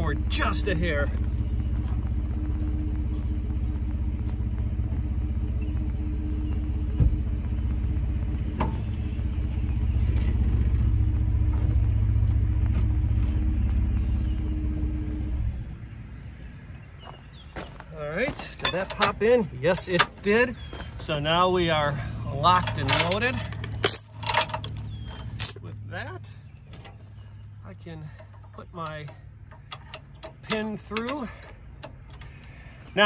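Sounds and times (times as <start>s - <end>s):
pickup engine idling: 0.0s - 15.5s, 18.4s - 33.0s.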